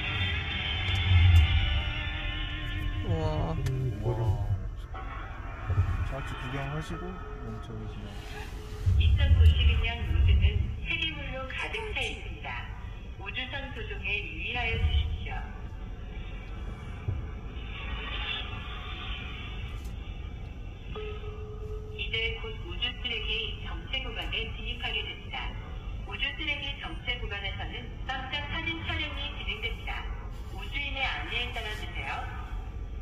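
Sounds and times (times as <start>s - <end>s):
music through small speaker: 0.0s - 3.0s
low rumble inside car: 0.0s - 33.0s
voice through small speaker: 3.0s - 4.8s, 6.1s - 15.6s.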